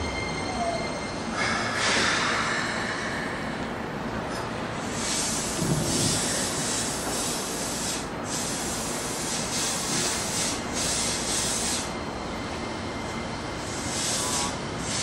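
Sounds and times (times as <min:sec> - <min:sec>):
electric train rumble: 0:00.0 - 0:15.0
train hissing: 0:00.8 - 0:03.8, 0:04.7 - 0:12.0, 0:13.6 - 0:15.0.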